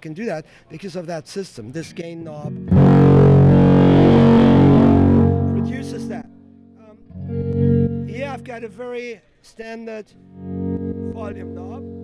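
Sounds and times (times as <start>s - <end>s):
electric guitar chord: 2.4s - 8.8s, 10.3s - 12.0s.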